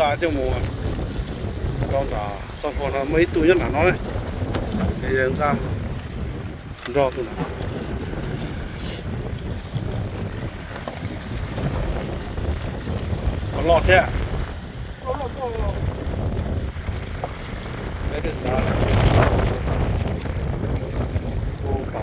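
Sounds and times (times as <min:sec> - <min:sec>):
waves washing on rocks: 0:00.0 - 0:22.0
wind buffeting microphone: 0:00.0 - 0:22.0.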